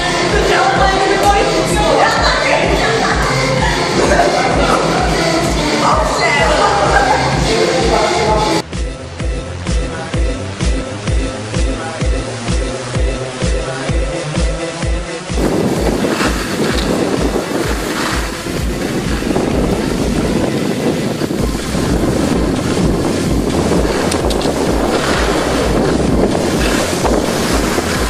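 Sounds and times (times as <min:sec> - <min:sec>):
dance-pop music with bass beat: 0:00.0 - 0:28.0
wind noise on microphone: 0:00.0 - 0:28.0.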